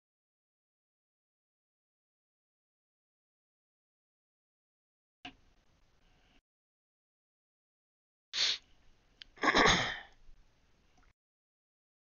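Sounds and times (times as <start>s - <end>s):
person sneezing: 8.4s - 8.6s, 9.4s - 10.1s
sharp breath in: 8.4s - 8.7s.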